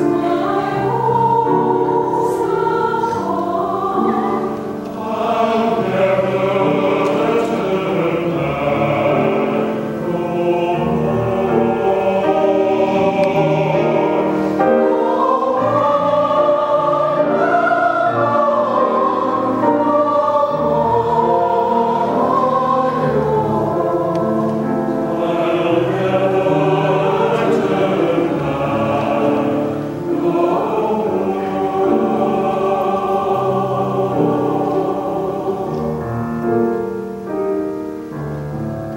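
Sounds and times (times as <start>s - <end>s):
choir singing in parts: 0.0s - 38.9s.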